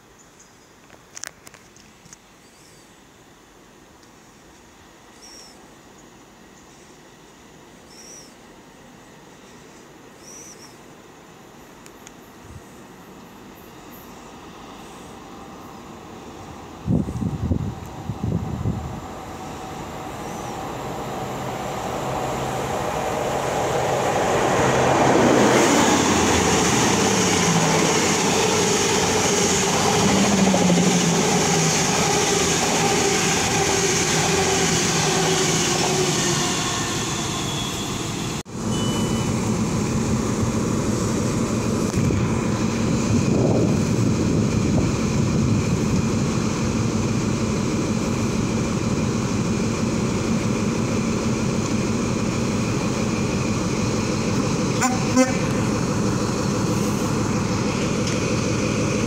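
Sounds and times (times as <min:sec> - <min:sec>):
diesel train engine: 0:10.9 - 0:59.0
train wheel noise: 0:13.0 - 0:59.0.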